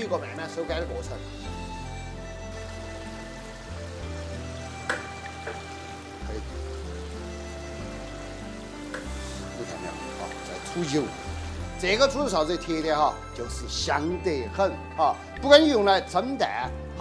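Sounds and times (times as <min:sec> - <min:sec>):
music with held notes and bass: 0:00.0 - 0:17.0.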